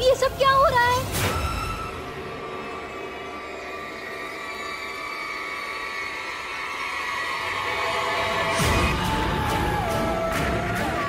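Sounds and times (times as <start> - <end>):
horror score drone: 1.1 - 11.0.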